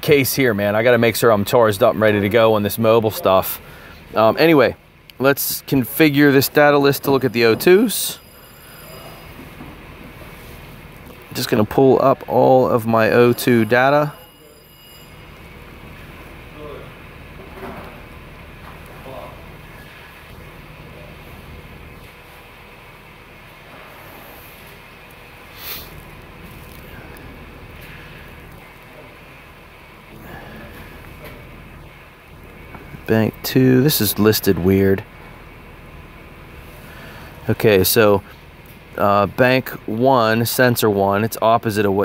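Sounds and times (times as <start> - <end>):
car engine idling: 0.0 - 14.2, 15.0 - 42.0.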